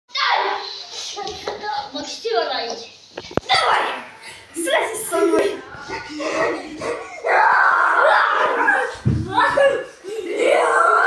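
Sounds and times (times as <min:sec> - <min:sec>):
children yelling: 0:00.1 - 0:00.7, 0:05.2 - 0:11.0.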